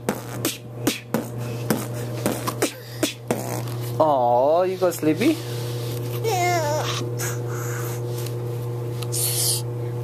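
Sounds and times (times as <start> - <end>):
man beatboxing: 0.0 - 3.7.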